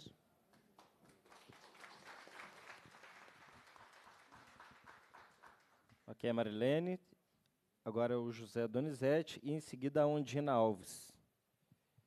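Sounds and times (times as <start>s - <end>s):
faint audience applause: 0.5s - 6.1s.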